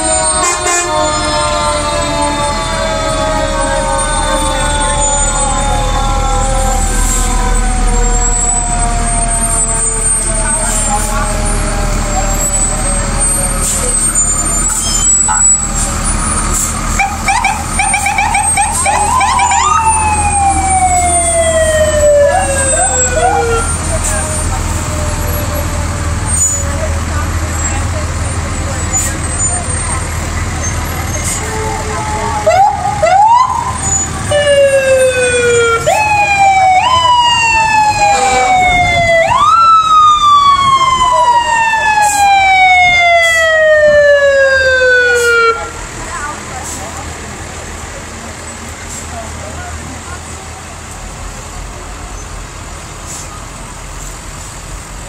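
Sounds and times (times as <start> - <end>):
fire engine sirens wailing: 0.0 - 55.0
low rumble of truck engines: 0.0 - 55.0.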